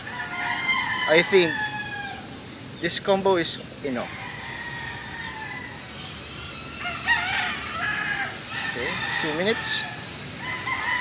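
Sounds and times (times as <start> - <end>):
rooster crowing: 0.0 - 2.3, 3.9 - 11.0.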